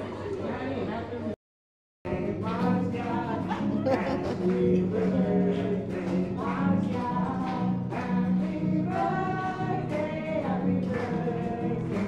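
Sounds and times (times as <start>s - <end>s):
acoustic guitar: 2.1s - 12.0s
group singing: 2.1s - 12.0s.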